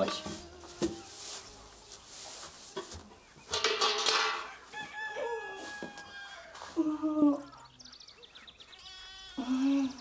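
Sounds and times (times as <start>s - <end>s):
rooster crowing: 4.4s - 6.7s.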